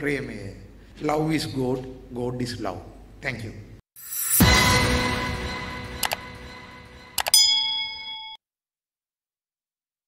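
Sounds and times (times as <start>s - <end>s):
notification bell ding: 7.2s - 8.4s.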